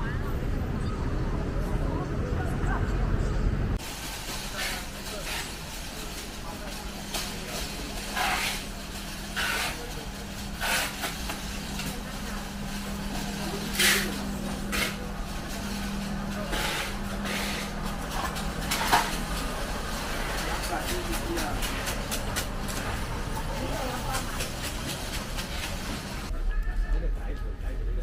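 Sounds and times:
voices of shoppers: 0:00.0 - 0:28.0.

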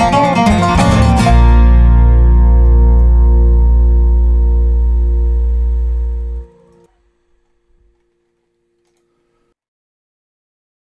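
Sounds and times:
acoustic guitar and bass chord: 0:00.0 - 0:06.9
faint lingering tone: 0:01.8 - 0:08.8.

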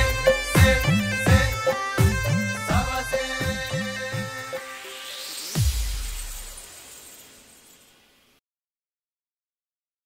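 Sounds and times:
glassy high shimmer: 0:02.9 - 0:08.4.

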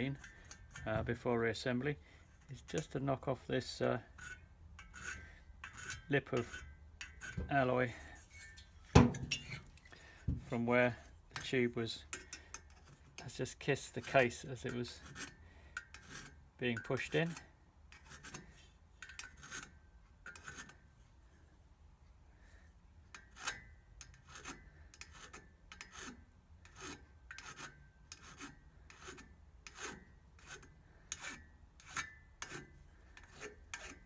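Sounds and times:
hand file scraping metal: 0:00.0 - 0:01.6, 0:02.3 - 0:20.9, 0:23.1 - 0:34.0.

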